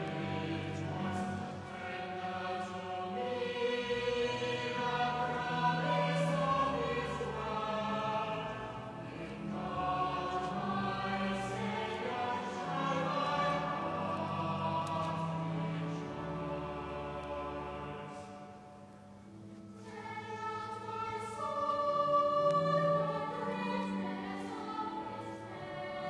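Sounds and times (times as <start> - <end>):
choir singing sustained chords: 0.0 - 26.0.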